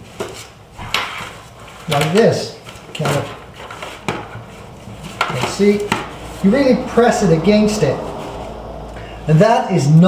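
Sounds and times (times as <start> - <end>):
rubbing and shuffling: 0.0 - 8.9.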